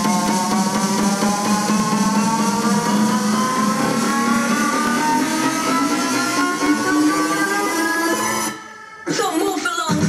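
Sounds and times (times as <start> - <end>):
synth riser sweep: 0.0 - 9.0
electronic dance music: 0.0 - 10.0.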